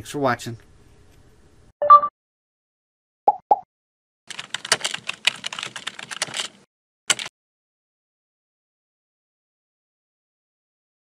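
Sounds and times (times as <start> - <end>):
keyboard typing clicks: 4.3 - 7.3.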